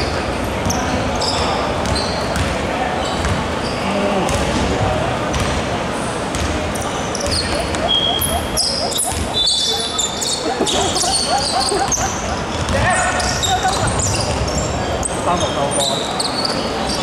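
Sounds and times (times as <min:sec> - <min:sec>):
sneakers squeaking: 0:00.0 - 0:03.9, 0:06.3 - 0:17.0
basketball dribbling: 0:07.2 - 0:14.7.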